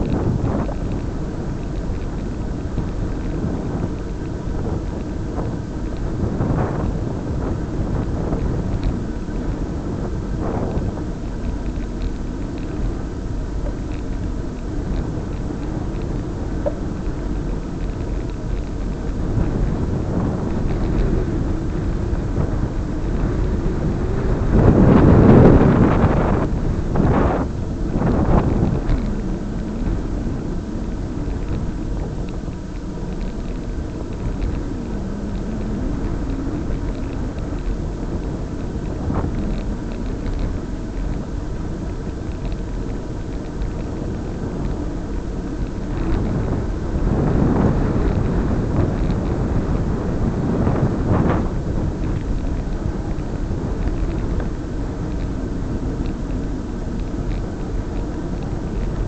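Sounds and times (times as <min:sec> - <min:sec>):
wind and road noise: 0:00.0 - 0:59.0.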